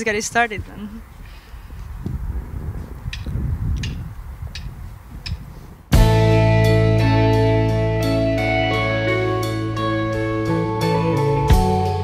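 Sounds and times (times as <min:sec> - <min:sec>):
rock band playing: 0:06.0 - 0:12.0.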